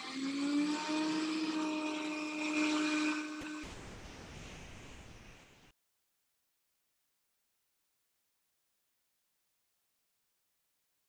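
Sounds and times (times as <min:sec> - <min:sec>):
small motor whirring: 0:00.0 - 0:03.6
faint hiss: 0:00.0 - 0:05.7.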